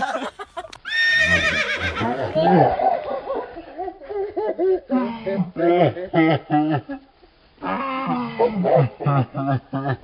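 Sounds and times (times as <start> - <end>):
pony whinnying: 0.9 - 2.4.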